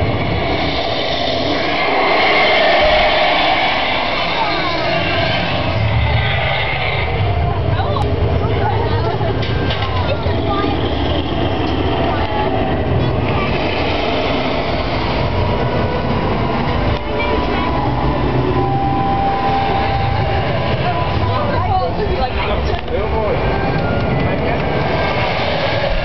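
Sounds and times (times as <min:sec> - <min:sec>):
tram rumbling: 0:00.0 - 0:26.0
voices: 0:00.0 - 0:26.0.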